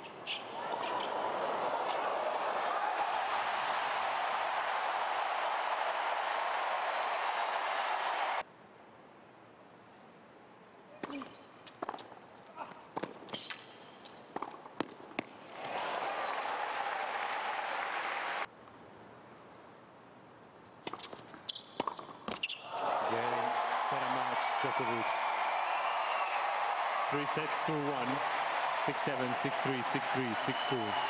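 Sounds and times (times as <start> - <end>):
crowd cheering: 0.4 - 8.4, 15.4 - 18.5, 22.7 - 31.0
crowd applause: 0.6 - 8.4, 15.5 - 18.5, 22.7 - 31.0
tennis ball bouncing on hard court: 14.3 - 15.4, 21.8 - 22.6
man talking: 23.0 - 25.2, 27.1 - 31.0.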